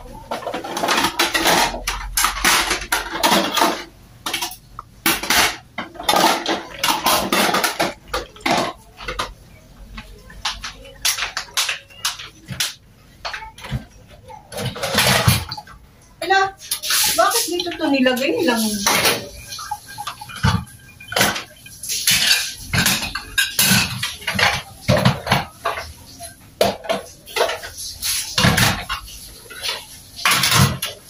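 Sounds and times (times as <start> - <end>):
dishes clinking and clattering: 0.0 - 31.0
water splashing: 14.6 - 26.3.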